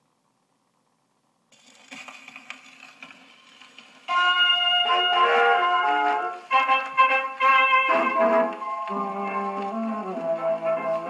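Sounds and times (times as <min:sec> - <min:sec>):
record surface hiss and crackles: 0:00.0 - 0:11.0.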